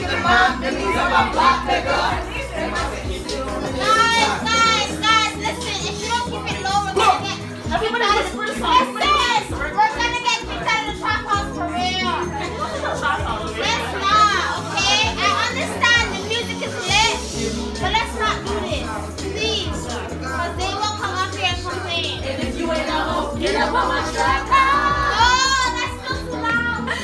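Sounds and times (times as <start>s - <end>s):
crowd shouting and laughing: 0.0s - 27.0s
loud music with bass line: 0.0s - 27.0s.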